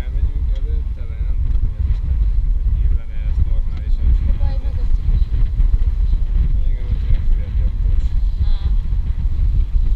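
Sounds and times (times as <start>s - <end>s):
water rushing along hull: 0.0s - 9.9s
wind buffeting microphone: 0.0s - 9.9s.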